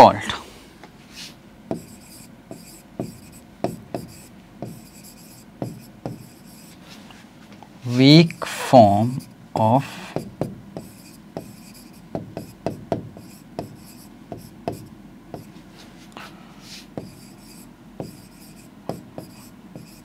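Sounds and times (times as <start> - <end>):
pen writing on a board: 1.7 - 6.8, 9.1 - 15.6, 17.0 - 20.0.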